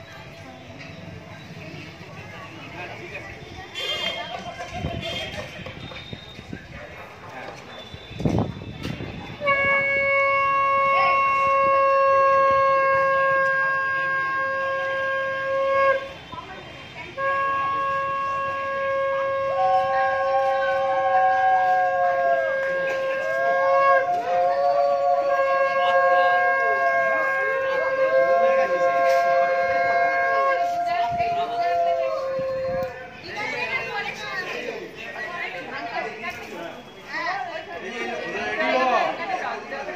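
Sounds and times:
conch shell blasts: 9.4 - 16.3, 17.2 - 31.6
higher-pitched conch blast: 9.4 - 16.4, 17.1 - 33.2.

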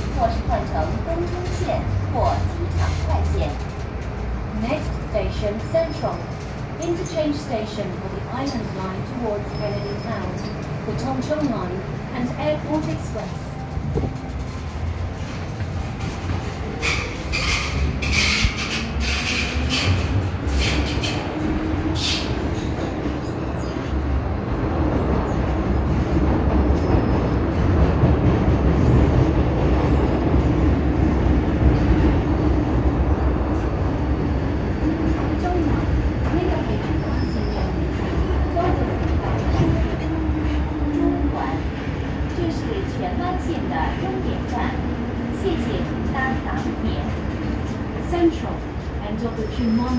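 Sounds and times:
train clicks and squeals: 0.0 - 24.1, 25.0 - 30.7, 33.4 - 44.8, 45.4 - 49.9
train wheel and track rumble: 0.0 - 49.9.

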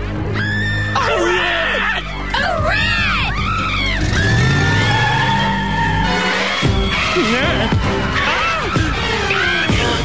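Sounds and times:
background music: 0.0 - 10.0
cartoon girls shrieking: 0.4 - 9.9.

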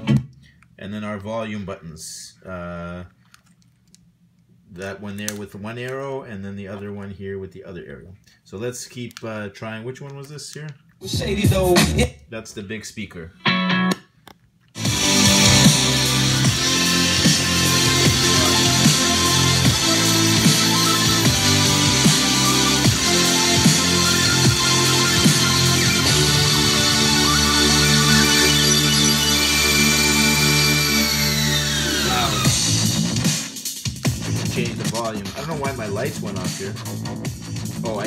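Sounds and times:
loud electronic music with bass: 11.0 - 12.1, 14.8 - 38.0.

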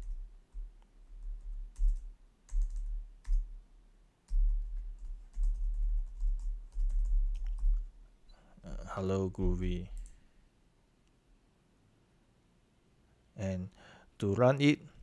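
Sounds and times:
typing on computer keyboard: 0.0 - 3.5, 4.3 - 7.9.

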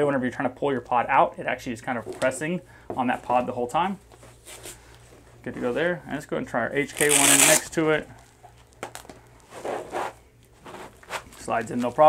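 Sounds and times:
plastic rubbing against fabric: 7.0 - 7.7, 9.4 - 12.0.

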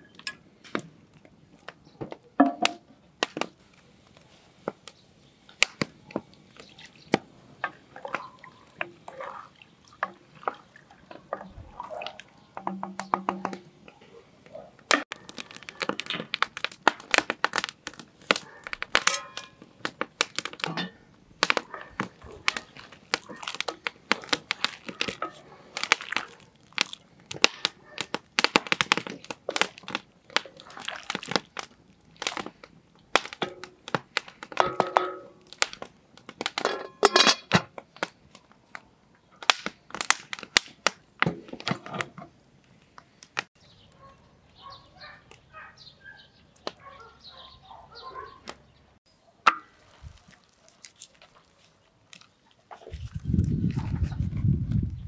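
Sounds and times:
wood fire crackling: 0.0 - 44.6, 49.4 - 55.0.

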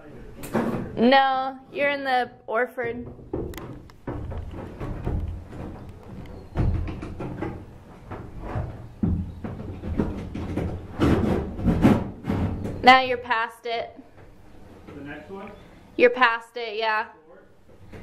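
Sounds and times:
knocks and thumps on wooden cabin: 2.8 - 12.8.

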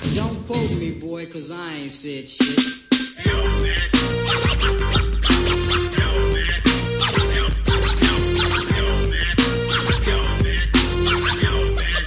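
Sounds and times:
turntable scratching: 0.0 - 1.1, 2.4 - 12.0
hip-hop beat: 0.0 - 12.0.

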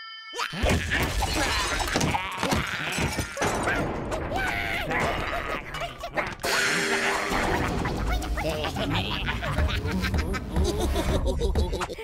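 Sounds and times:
cartoon characters wailing and yelling: 0.4 - 12.0.

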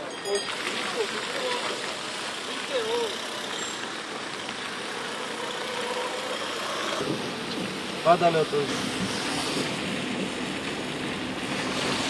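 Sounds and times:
rain: 0.0 - 12.0
tyres hissing on wet road: 0.0 - 12.0
vehicle engines running: 0.0 - 12.0.

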